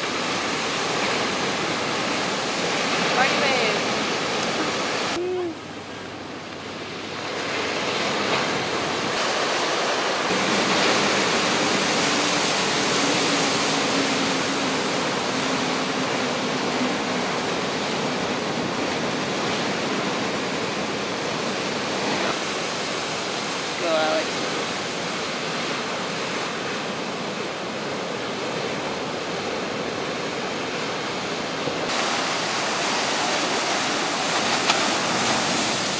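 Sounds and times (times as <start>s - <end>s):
ocean surf breaking: 0.0s - 35.9s.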